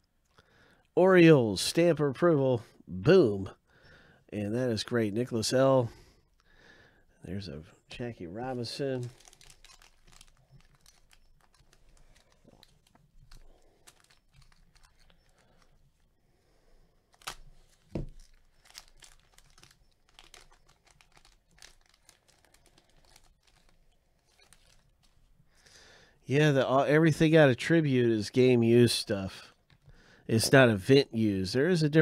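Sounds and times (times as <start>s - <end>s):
plastic wrapper crinkling and tearing: 8.4s - 16.1s, 17.1s - 25.4s.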